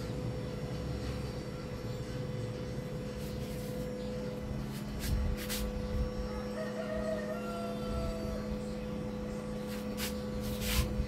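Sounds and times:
low electrical hum: 0.0s - 11.0s
rooster crowing faintly: 6.2s - 8.7s.

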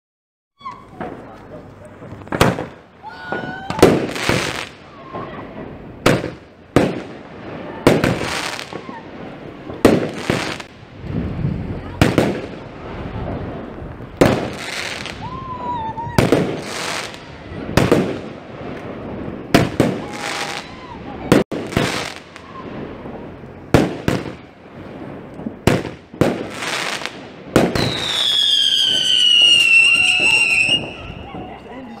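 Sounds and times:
firework bursts in the air: 0.6s - 31.7s
firework shots firing: 0.7s - 15.4s, 16.0s - 31.6s.

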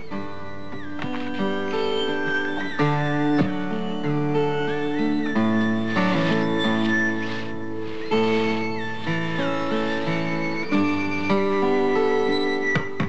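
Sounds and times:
slow instrumental music: 0.0s - 13.0s.

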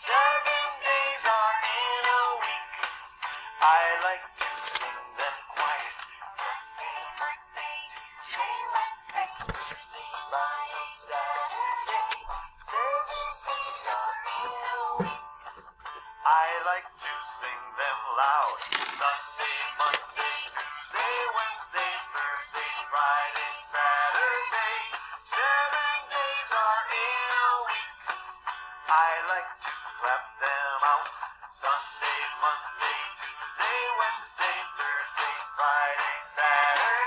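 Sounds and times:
person singing children's song: 0.0s - 37.0s
upbeat backing music: 0.0s - 37.0s.

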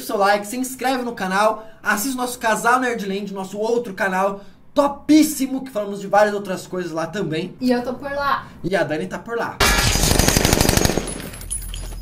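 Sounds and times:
automatic rifle gunfire: 9.6s - 11.4s.

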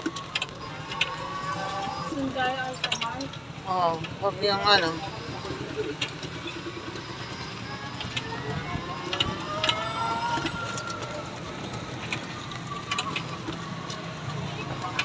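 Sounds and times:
e-bike ride noise in rain: 0.0s - 15.0s.

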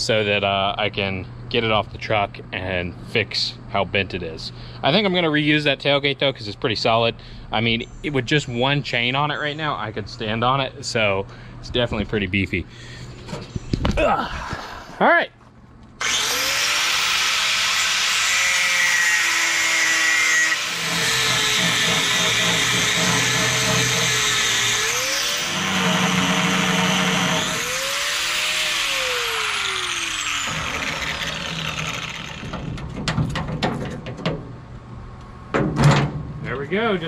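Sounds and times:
angle grinder cutting metal: 16.0s - 32.7s.

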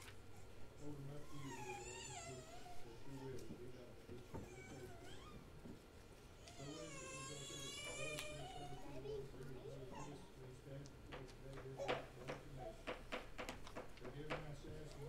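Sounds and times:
man leading a prayer: 0.7s - 5.1s, 6.5s - 13.0s, 13.8s - 15.0s
young child crying: 6.5s - 10.3s.

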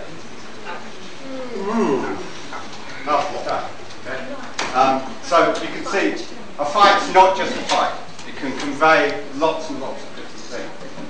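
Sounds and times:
person's drawn-out voiced call: 1.3s - 2.3s.

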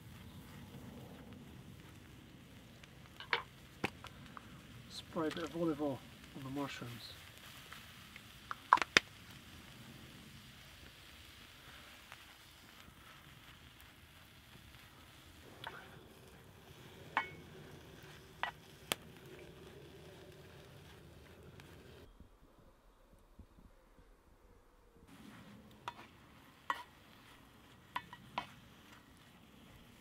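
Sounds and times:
mushrooms hissing in a skillet: 0.0s - 22.1s, 25.1s - 30.0s.

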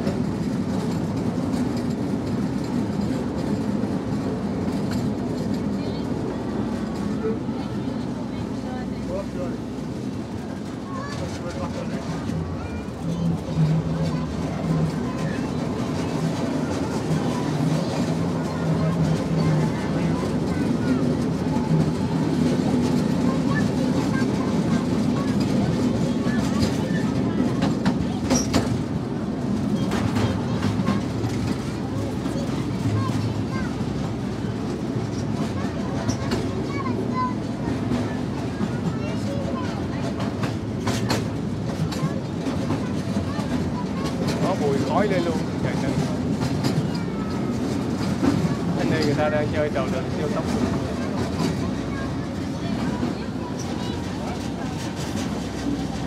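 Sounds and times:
amusement park train rumbling: 0.0s - 56.0s.

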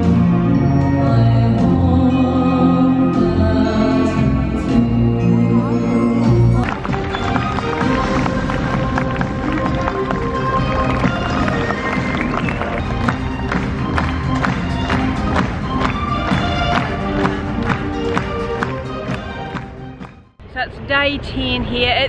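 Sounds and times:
music with steady beat: 3.1s - 20.4s.

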